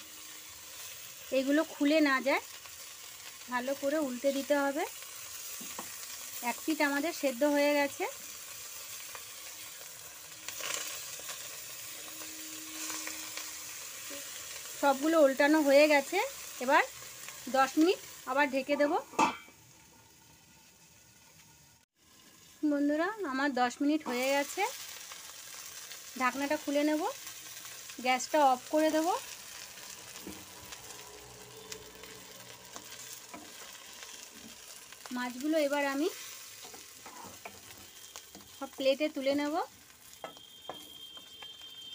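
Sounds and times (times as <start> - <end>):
fish parcels sizzling in oil: 0.0 - 41.9.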